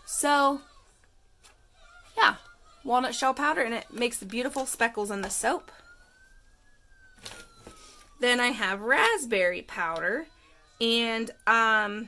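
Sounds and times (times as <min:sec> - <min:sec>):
faint siren wailing: 0:00.0 - 0:12.0
plastic pouch crinkling: 0:07.1 - 0:08.1.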